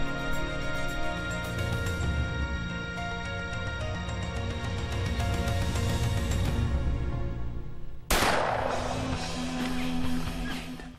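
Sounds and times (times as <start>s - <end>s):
background music: 0.0s - 10.9s
loud rifle shot: 8.1s - 9.6s.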